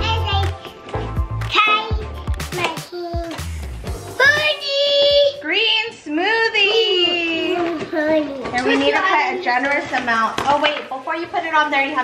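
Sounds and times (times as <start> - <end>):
girl singing: 2.8 - 3.6.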